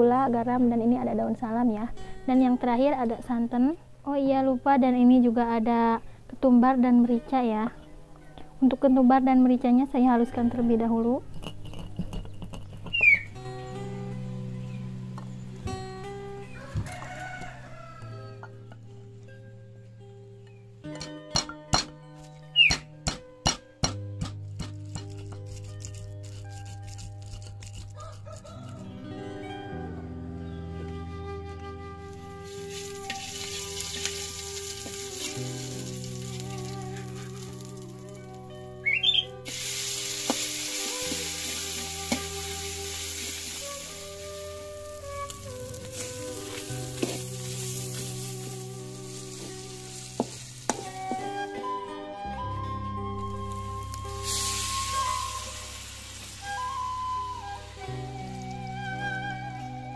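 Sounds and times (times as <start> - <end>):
background music: 0.0 - 59.9
stone pestle knocking mortar: 22.7 - 25.4
spice paste sizzling in oil: 24.8 - 28.8, 32.4 - 51.4, 53.5 - 58.7.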